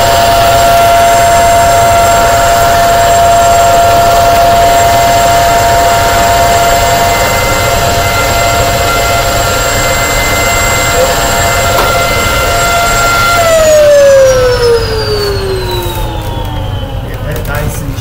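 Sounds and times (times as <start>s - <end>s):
vacuum cleaner motor whine: 0.0s - 18.0s.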